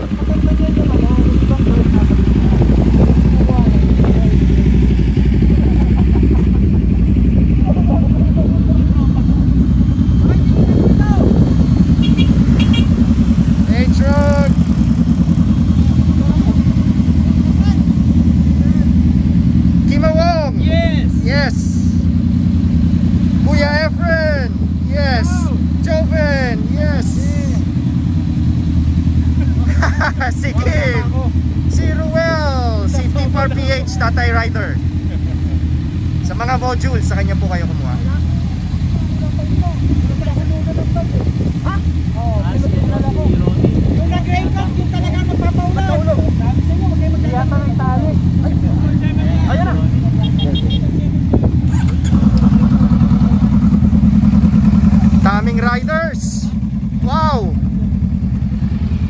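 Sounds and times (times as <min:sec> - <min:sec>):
people talking: 0:00.0 - 0:11.4, 0:13.6 - 0:14.7, 0:15.7 - 0:19.2, 0:19.8 - 0:22.0, 0:23.4 - 0:27.7, 0:29.4 - 0:35.4, 0:36.2 - 0:52.0, 0:55.0 - 0:57.6
motorcycle engines idling: 0:00.0 - 0:59.0.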